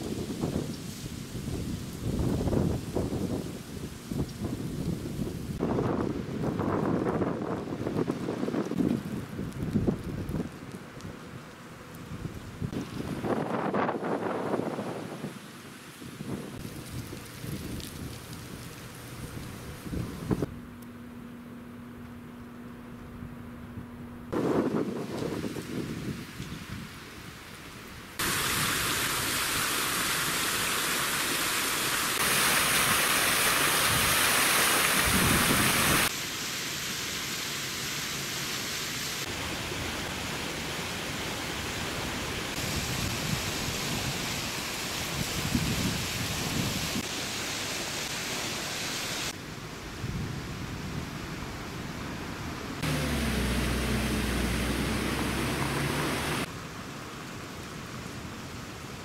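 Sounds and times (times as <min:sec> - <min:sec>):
water splashing in a fountain: 0:00.0 - 0:20.5, 0:24.7 - 0:52.2, 0:52.8 - 0:59.0
steady hiss: 0:24.4 - 0:51.9.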